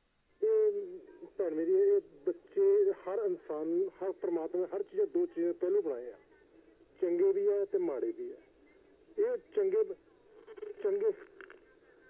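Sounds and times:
person talking over telephone: 0:00.4 - 0:06.2, 0:09.2 - 0:12.0.

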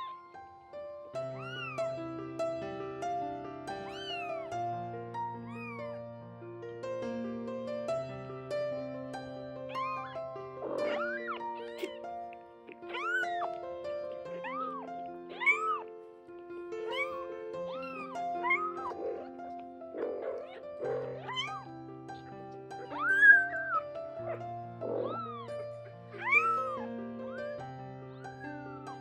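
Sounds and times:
kittens mewing: 0:00.0 - 0:00.4, 0:01.2 - 0:02.0, 0:03.7 - 0:04.8, 0:05.4 - 0:06.0, 0:09.7 - 0:29.0.

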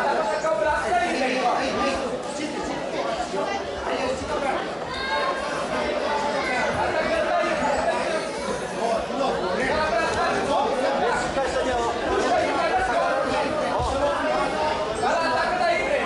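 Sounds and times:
crowd chatter in a hall: 0:00.0 - 0:16.0.

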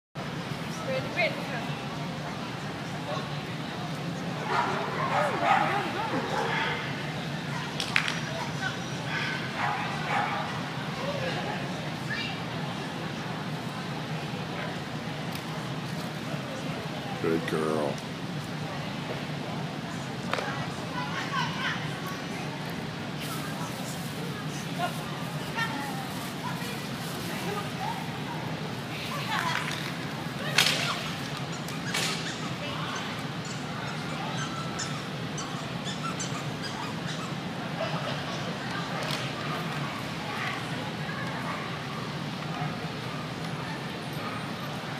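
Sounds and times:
faint distant voices: 0:00.2 - 0:44.9.

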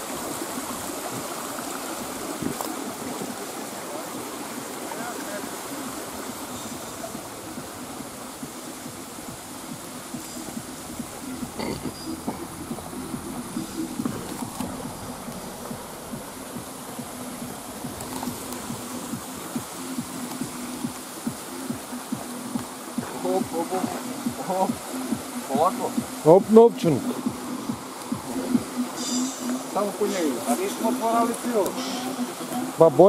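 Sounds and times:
stream water rushing: 0:00.0 - 0:33.0
steady low hum: 0:06.4 - 0:20.8.

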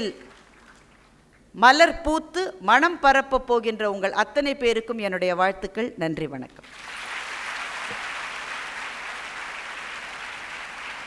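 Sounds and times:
audience applauding: 0:06.6 - 0:11.0.

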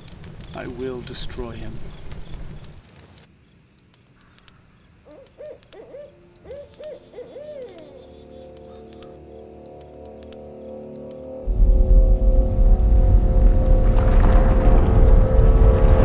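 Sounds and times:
owl hooting: 0:04.2 - 0:09.5
low rumbling drone: 0:10.6 - 0:16.0.

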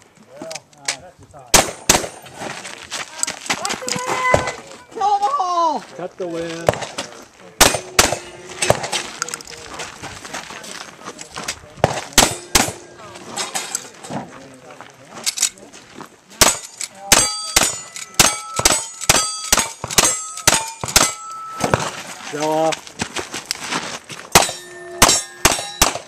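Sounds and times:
gunshots: 0:01.5 - 0:02.2, 0:07.6 - 0:09.0, 0:11.8 - 0:13.0, 0:16.4 - 0:21.9, 0:24.3 - 0:26.0
steel plates ringing: 0:16.5 - 0:22.0, 0:24.4 - 0:26.0.

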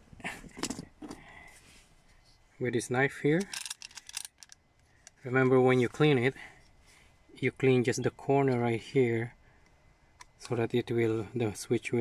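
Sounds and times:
handling clicks and rustles: 0:03.4 - 0:06.8.

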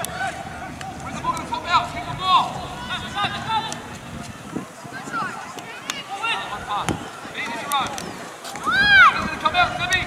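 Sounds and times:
children shouting: 0:08.5 - 0:09.4.

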